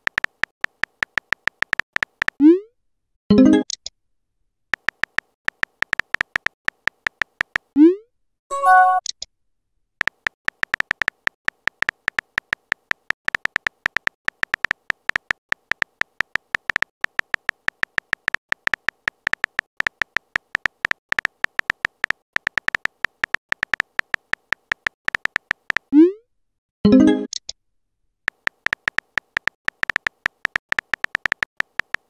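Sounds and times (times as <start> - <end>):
phone keyboard typing clicks: 0.0 - 2.4, 4.8 - 7.8, 10.0 - 25.9, 28.3 - 32.0.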